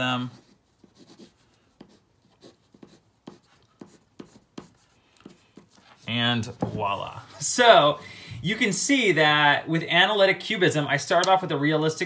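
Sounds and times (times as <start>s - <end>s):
pencil scratching on paper: 0.0s - 7.5s.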